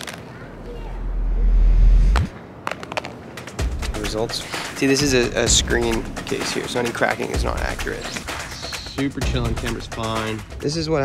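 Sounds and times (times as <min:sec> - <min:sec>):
music: 0:03.3 - 0:11.0.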